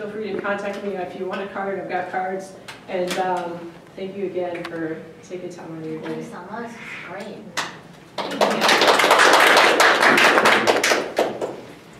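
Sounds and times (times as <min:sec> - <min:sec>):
people applauding: 0:08.2 - 0:11.7.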